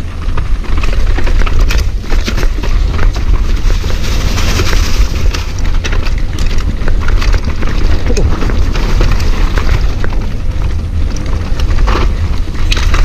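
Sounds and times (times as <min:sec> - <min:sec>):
bike clicks and rattles: 0:00.0 - 0:13.0
tyres on dirt and leaves: 0:00.0 - 0:13.0
wind buffeting microphone: 0:00.0 - 0:13.0.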